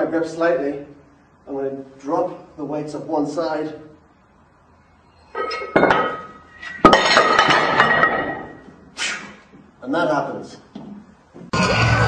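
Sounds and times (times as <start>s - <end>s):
weight plates clanging on floor: 5.3s - 8.6s.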